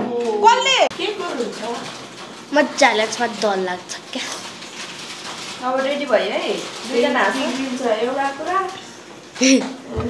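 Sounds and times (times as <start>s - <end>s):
girl speaking: 2.5s - 4.5s.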